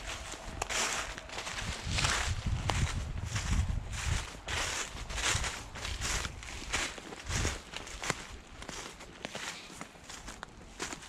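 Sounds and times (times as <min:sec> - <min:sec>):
footsteps in dry leaves: 0:00.0 - 0:11.0.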